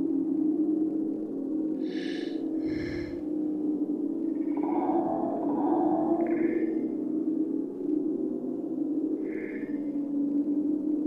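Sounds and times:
low ambient drone: 0:00.0 - 0:11.0.

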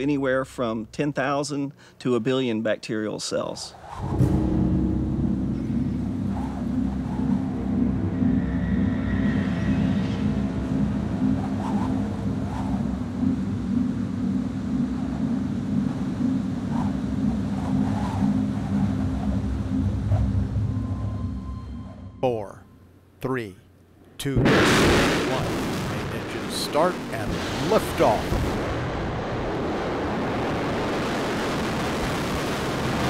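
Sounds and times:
strong wind rumbling: 0:03.8 - 0:21.4.

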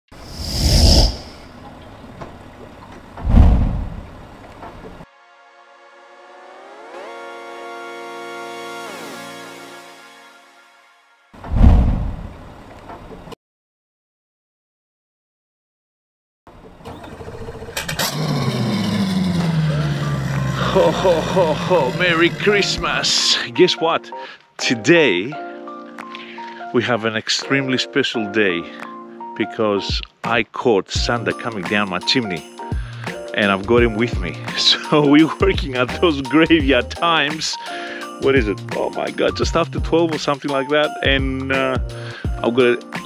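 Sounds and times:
engine humming: 0:01.1 - 0:05.0, 0:16.5 - 0:23.2.

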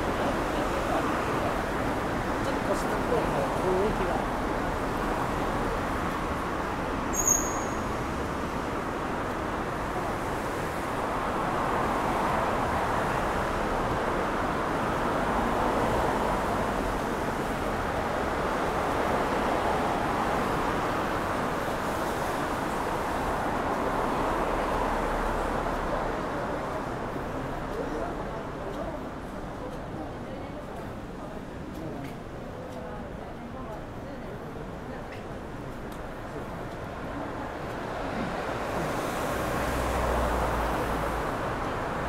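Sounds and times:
cars passing: 0:00.0 - 0:30.0, 0:34.4 - 0:42.0.

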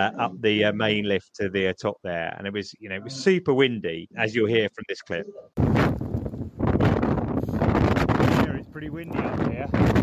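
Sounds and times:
wind buffeting microphone: 0:05.6 - 0:10.0.

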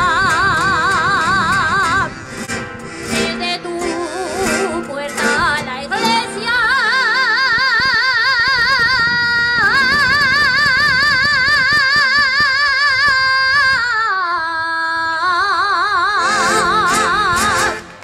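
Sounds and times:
woman singing with vibrato: 0:00.0 - 0:02.3, 0:03.0 - 0:18.0.

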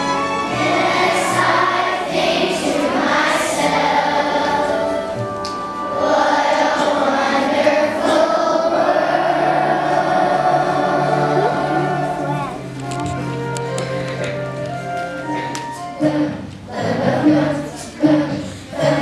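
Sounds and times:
children's choir singing: 0:00.0 - 0:12.8, 0:15.3 - 0:19.0.

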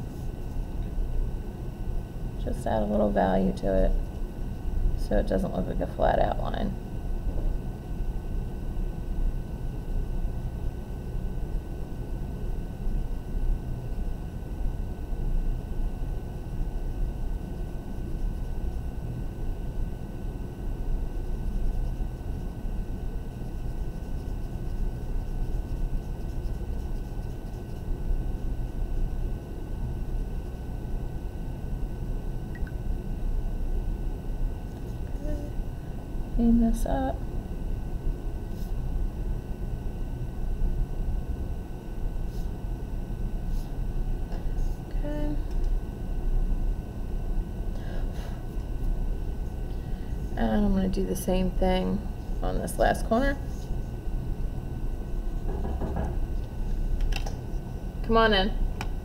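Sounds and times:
pencil shading on paper: 0:21.2 - 0:28.0.

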